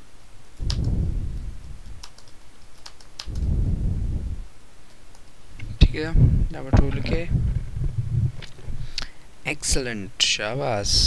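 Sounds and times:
low rumble: 0:00.6 - 0:02.2, 0:03.3 - 0:04.6, 0:05.6 - 0:08.9
typing on computer keyboard: 0:02.0 - 0:03.5.

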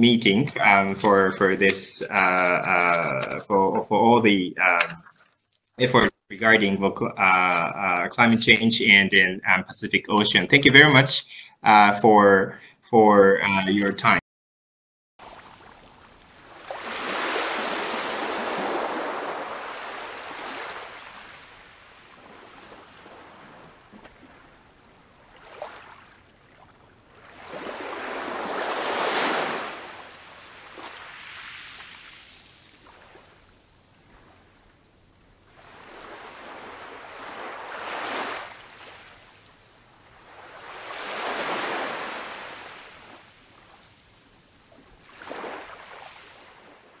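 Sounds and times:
ocean waves washing in: 0:15.2 - 0:34.7, 0:35.4 - 0:47.0.

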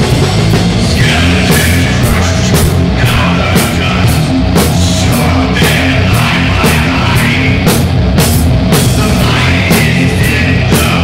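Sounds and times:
distorted guitar and bass: 0:00.0 - 0:11.0
drums: 0:00.0 - 0:11.0.

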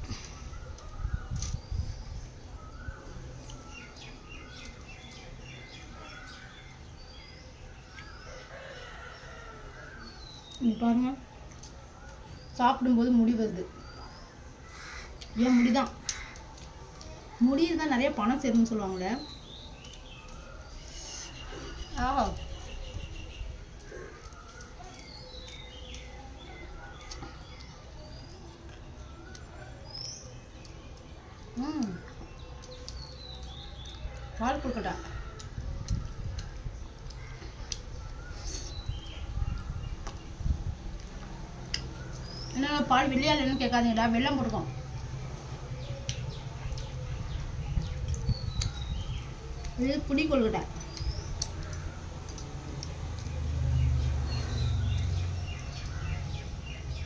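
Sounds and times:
small birds chirping: 0:00.0 - 0:57.0.

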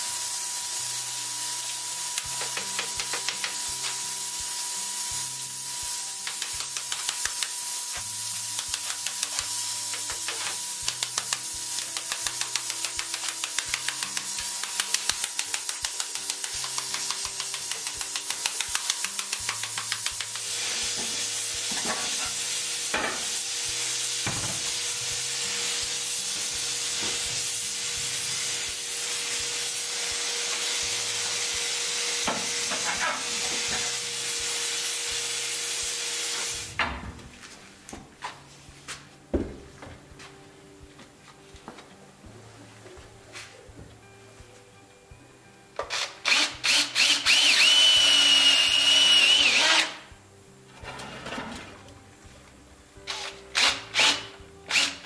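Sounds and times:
hot steel hissing with steam: 0:13.0 - 0:36.8.

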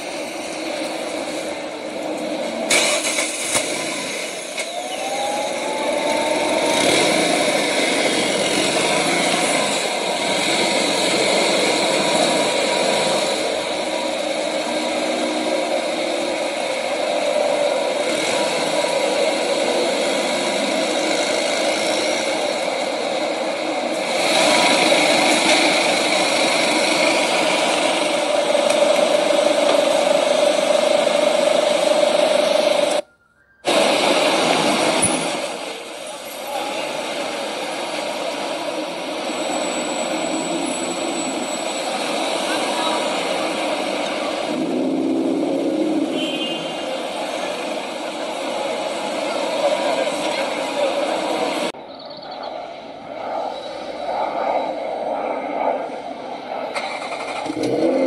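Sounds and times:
street traffic: 0:00.0 - 0:58.0.

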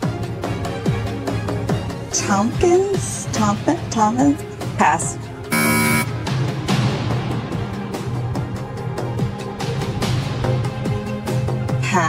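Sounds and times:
tense background music: 0:00.0 - 0:11.8
game-show buzzer: 0:05.5 - 0:06.2.

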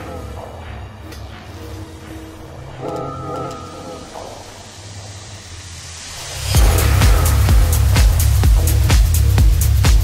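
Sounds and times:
low bass drone: 0:00.0 - 0:10.0.

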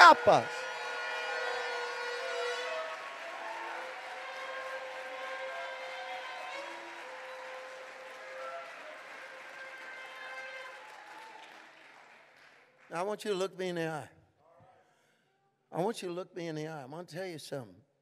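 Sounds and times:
congregation applauding: 0:00.0 - 0:13.6.

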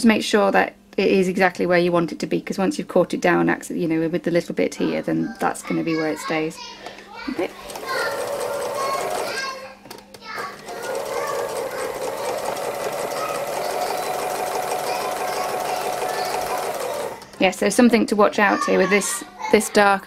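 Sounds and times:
sewing machine stitching: 0:07.5 - 0:09.5, 0:10.4 - 0:17.4.

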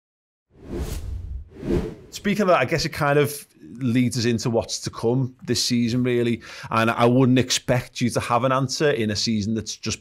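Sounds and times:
whoosh with bass rumble: 0:00.6 - 0:02.1.

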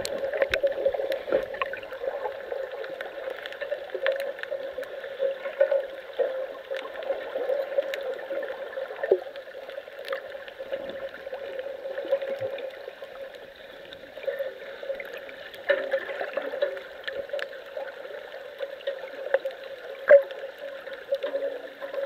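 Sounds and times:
muffled underwater water wash: 0:00.0 - 0:22.0
small clicks: 0:02.6 - 0:08.3.

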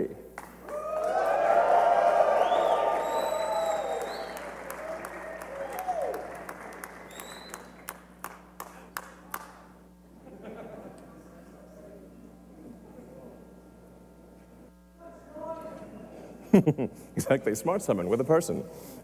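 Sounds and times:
audience cheering and applauding: 0:00.6 - 0:08.7
voices shouting and whooping: 0:00.7 - 0:06.3.

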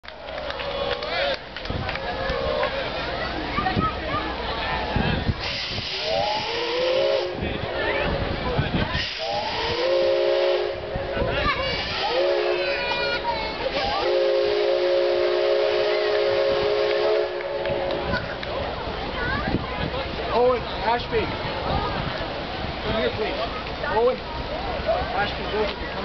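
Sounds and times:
steam hissing: 0:04.8 - 0:18.8
steam locomotive whistle blasts: 0:05.4 - 0:07.4, 0:09.0 - 0:10.9, 0:11.7 - 0:18.0.

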